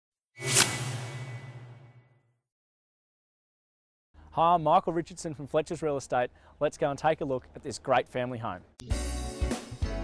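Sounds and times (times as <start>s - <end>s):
whoosh sound effect: 0.4s - 2.1s.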